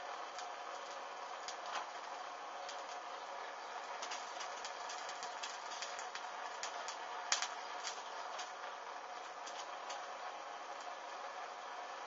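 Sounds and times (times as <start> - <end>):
burning fabric crackling and popping: 0.0 - 12.0.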